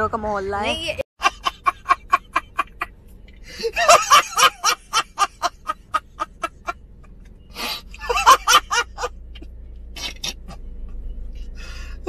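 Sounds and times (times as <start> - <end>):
man laughing hard: 1.2 - 2.8, 3.5 - 6.8, 8.0 - 9.1.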